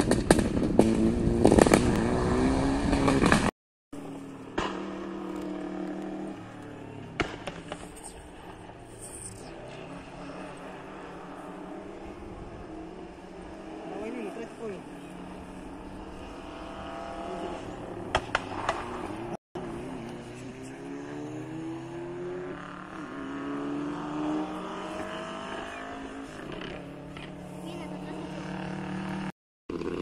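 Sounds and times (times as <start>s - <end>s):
distant rally car engine revving: 0.0s - 30.0s
sharp engine pops: 4.5s - 5.0s, 7.2s - 8.1s, 18.1s - 19.1s.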